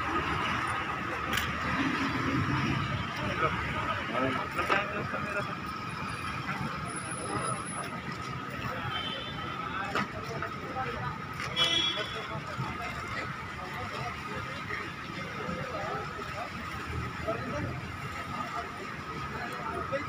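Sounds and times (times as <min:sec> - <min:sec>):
murmur of voices: 0:00.0 - 0:20.0
traffic noise: 0:00.0 - 0:20.0.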